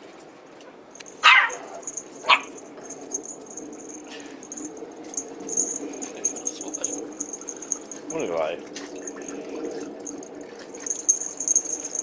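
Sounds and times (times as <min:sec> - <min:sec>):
small dog barking: 0:01.2 - 0:02.6.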